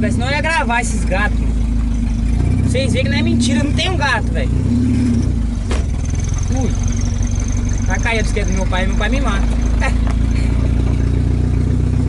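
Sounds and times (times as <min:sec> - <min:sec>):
car engine running: 0:00.0 - 0:12.0.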